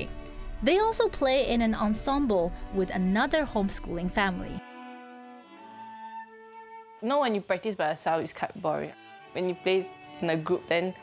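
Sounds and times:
bowed strings: 0.0s - 11.0s.

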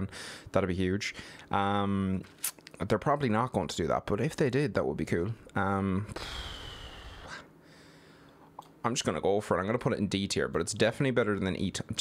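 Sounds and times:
man sighing: 6.1s - 7.5s.

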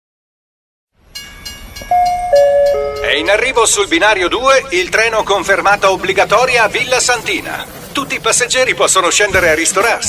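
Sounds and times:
train running on rails: 1.0s - 10.0s
station announcement chime: 1.2s - 4.2s.

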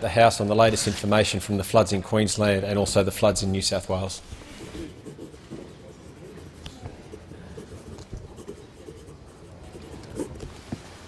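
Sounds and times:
faint murmur: 4.3s - 10.8s.

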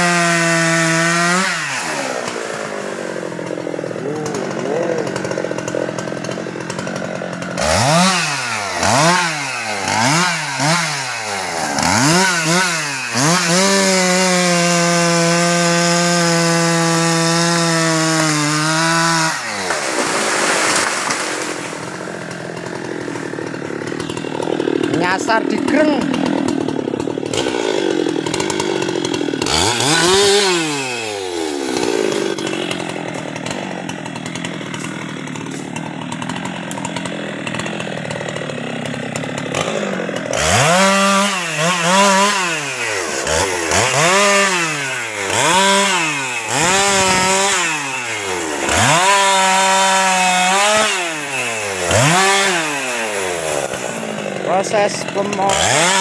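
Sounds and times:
chainsaw revving and idling: 0.0s - 56.0s.

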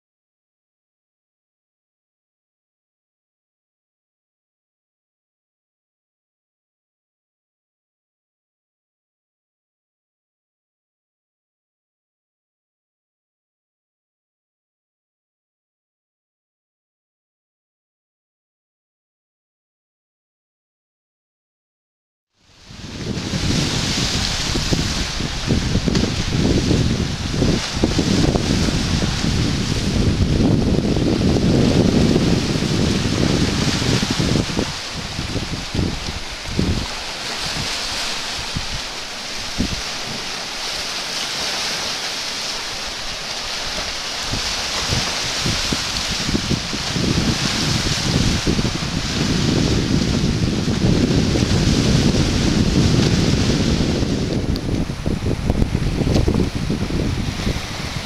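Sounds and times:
wind buffeting microphone: 22.5s - 58.0s
small waves washing on rocks: 22.6s - 58.0s.

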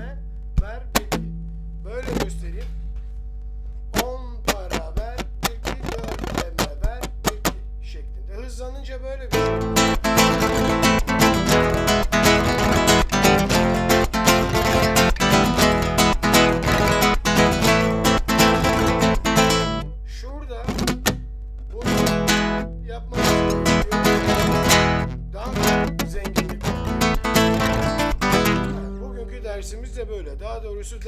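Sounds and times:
acoustic guitar strummed fast: 0.6s - 2.6s, 4.0s - 7.7s, 9.3s - 19.9s, 20.6s - 30.0s.

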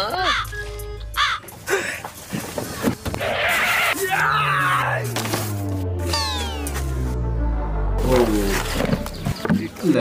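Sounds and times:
crow cawing: 0.2s - 0.5s, 1.1s - 1.5s
faint low sounds: 5.0s - 9.2s.

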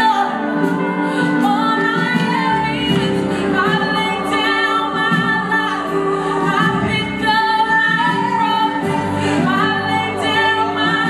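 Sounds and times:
live band playing: 0.0s - 11.0s
woman singing gospel song: 0.0s - 11.0s.

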